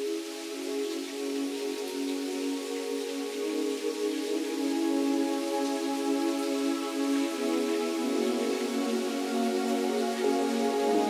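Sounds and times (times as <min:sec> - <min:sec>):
ambient music soft chords: 0:00.0 - 0:11.0
even hiss: 0:00.0 - 0:11.0.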